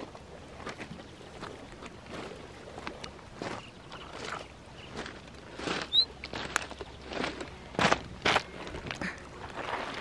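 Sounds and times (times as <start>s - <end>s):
footsteps on pebbles: 0.0s - 10.0s.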